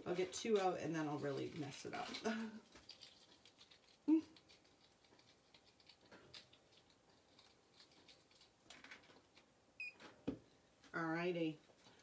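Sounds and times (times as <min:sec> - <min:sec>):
necklace and packaging handled: 0:00.1 - 0:09.5.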